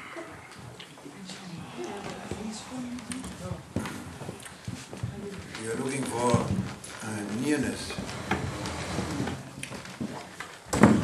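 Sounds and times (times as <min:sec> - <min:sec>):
soft murmured voices: 0:00.0 - 0:09.9
knocks and thumps: 0:10.0 - 0:11.0.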